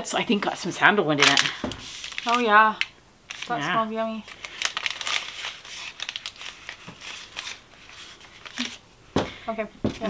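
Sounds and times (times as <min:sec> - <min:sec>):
paper wrapping crinkling: 0:01.2 - 0:10.0.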